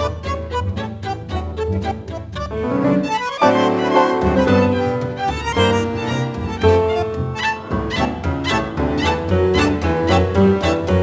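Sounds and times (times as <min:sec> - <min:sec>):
tango ensemble with violins: 0:00.0 - 0:11.0.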